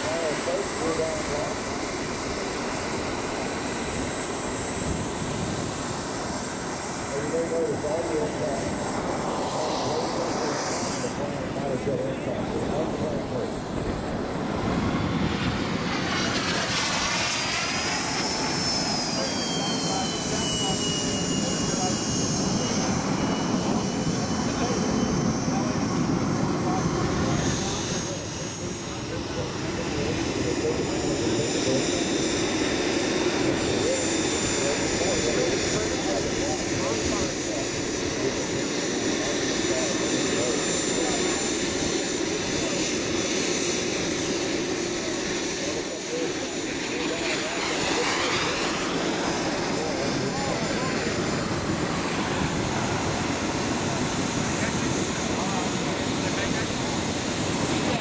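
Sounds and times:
model jet engine rush and whine: 0:00.0 - 0:58.0.

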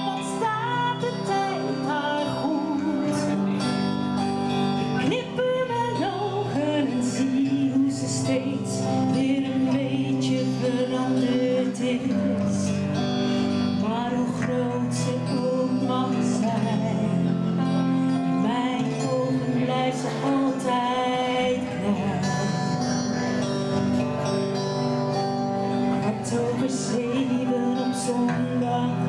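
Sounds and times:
woman singing into microphone: 0:00.0 - 0:24.0, 0:25.6 - 0:29.0
electric guitars: 0:00.0 - 0:29.0.

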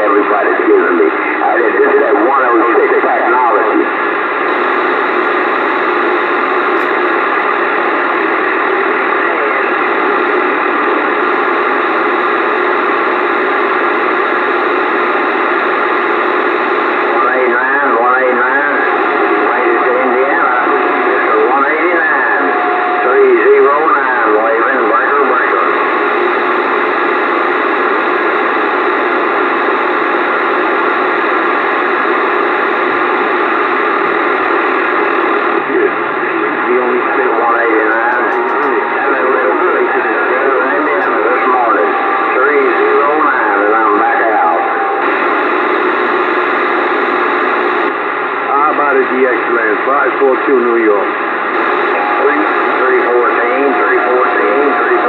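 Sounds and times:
faint unintelligible radio voices: 0:00.0 - 0:55.0
radio static hiss: 0:00.0 - 0:55.0.

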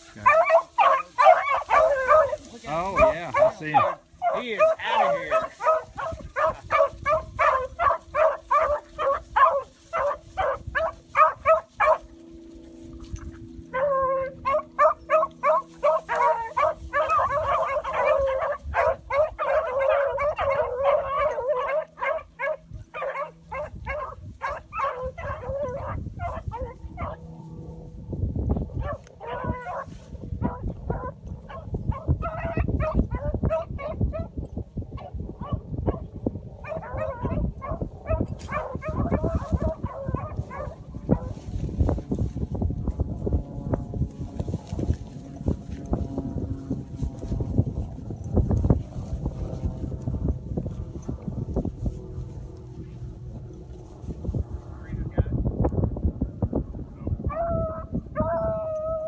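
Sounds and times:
hounds baying: 0:00.0 - 0:27.4, 0:28.7 - 0:34.4, 0:35.0 - 0:41.7, 0:57.3 - 0:59.0.

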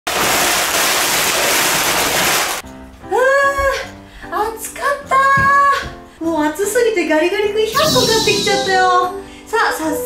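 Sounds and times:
musical jingle: 0:07.7 - 0:09.2.

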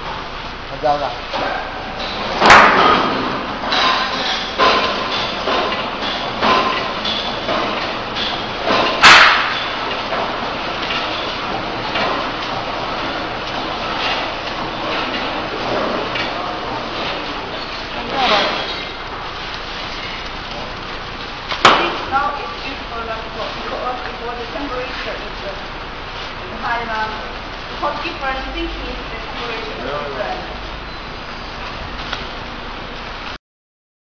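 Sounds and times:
loud bang: 0:09.0 - 0:09.6.

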